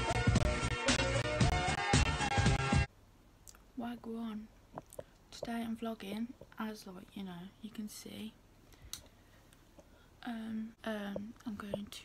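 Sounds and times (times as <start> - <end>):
woman speaking quietly: 10.2 - 12.0.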